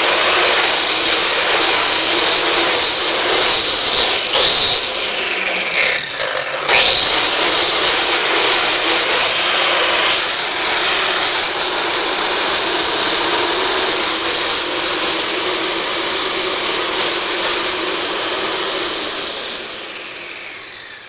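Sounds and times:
electric lawn edger whirring: 0:00.0 - 0:21.0.

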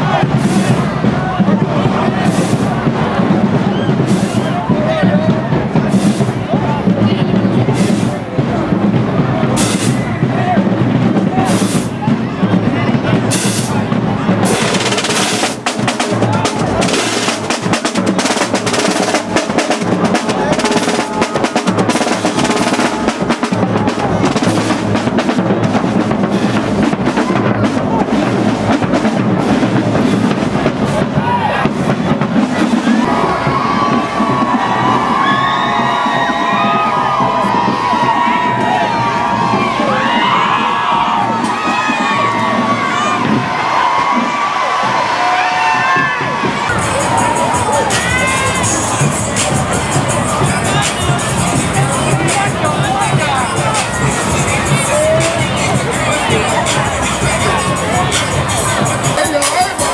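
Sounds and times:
crowd shouting and cheering: 0:00.0 - 0:59.9
marching band drums and cymbals: 0:00.0 - 0:59.9.

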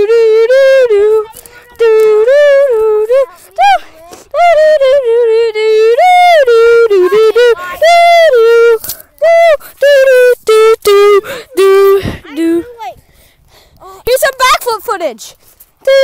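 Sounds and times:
person singing wordless tune: 0:00.0 - 0:12.7.

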